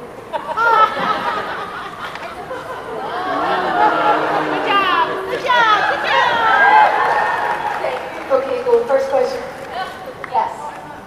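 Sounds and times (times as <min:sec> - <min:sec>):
voices chattering: 0:02.0 - 0:11.0.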